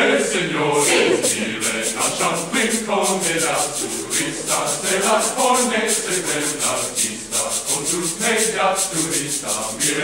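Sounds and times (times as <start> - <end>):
choir singing: 0.0 - 10.0
rapid swishing percussion: 0.0 - 10.0.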